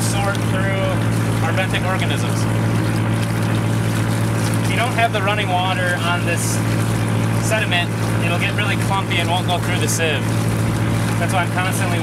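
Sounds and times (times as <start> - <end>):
engine low drone: 0.0 - 12.0
hose water running into bucket: 0.0 - 12.0.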